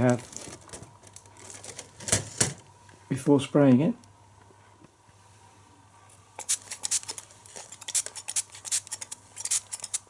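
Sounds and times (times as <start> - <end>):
spray bottle spritzing: 6.4 - 10.0.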